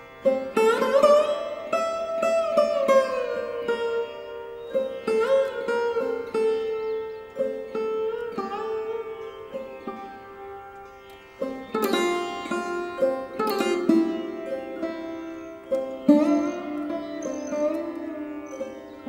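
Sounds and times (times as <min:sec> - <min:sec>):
plucked string instrument notes: 0:00.0 - 0:19.0.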